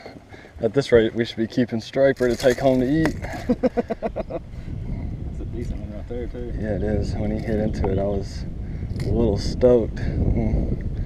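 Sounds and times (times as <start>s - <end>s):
man laughing: 3.2s - 4.6s.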